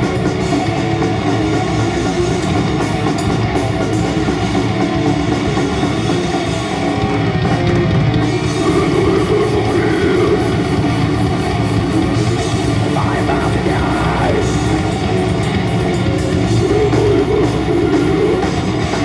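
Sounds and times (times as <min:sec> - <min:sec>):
distorted electric guitars: 0:00.0 - 0:19.0
pounding drum kit: 0:00.0 - 0:19.0.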